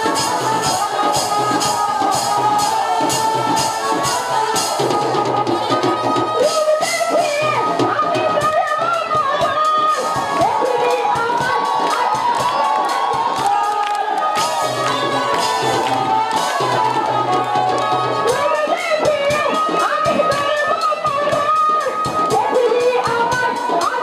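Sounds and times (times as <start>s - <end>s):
audience cheering and shouting: 0.0s - 24.0s
quick drum beat: 0.0s - 24.0s.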